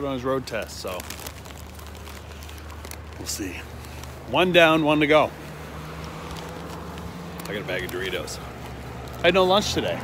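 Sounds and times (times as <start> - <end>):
low outdoor rumble: 0.0 - 10.0
faint crackles: 0.2 - 9.4.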